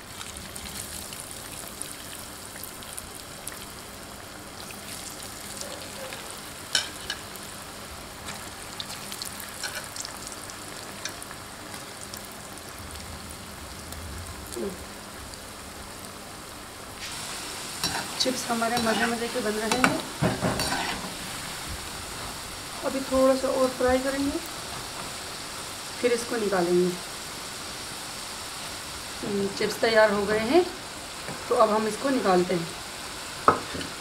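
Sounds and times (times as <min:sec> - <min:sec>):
potatoes sizzling in hot oil: 0:00.0 - 0:34.0.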